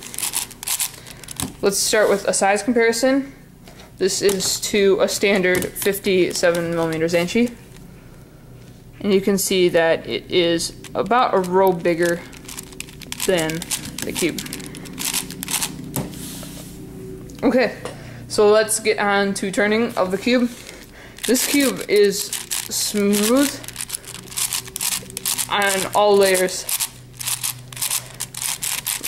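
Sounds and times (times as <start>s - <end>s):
puzzle cube clicks: 10.8s - 15.8s, 21.2s - 29.0s
soft brushing on cloth mat: 16.1s - 16.8s.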